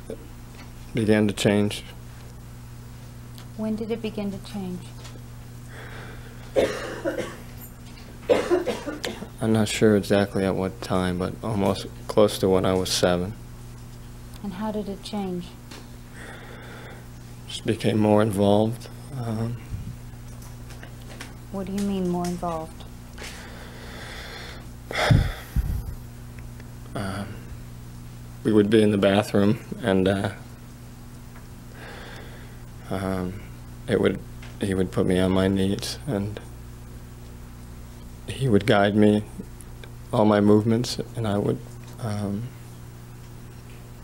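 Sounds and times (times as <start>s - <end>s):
steady low hum: 0.0s - 44.0s
person coughing: 6.6s - 7.5s, 8.3s - 9.4s.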